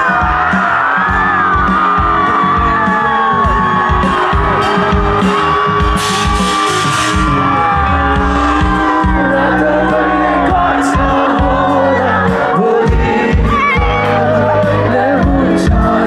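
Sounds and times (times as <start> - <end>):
crowd whooping: 0.0 - 16.0
live rock band playing: 0.0 - 16.0
pounding drum beat: 0.0 - 16.0.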